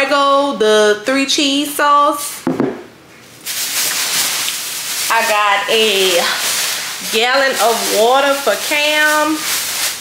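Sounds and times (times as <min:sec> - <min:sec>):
plastic bag rustling: 0:03.2 - 0:10.0.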